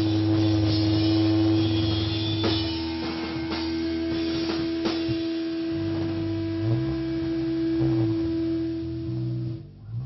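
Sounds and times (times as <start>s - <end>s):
guitar amp feedback tone: 0.0s - 10.0s
sliding bass guitar notes: 0.0s - 10.0s.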